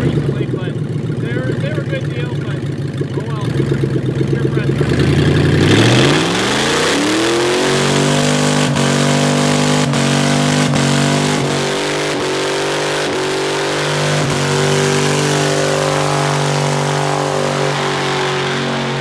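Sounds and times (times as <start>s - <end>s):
engine revving: 0.0s - 19.0s.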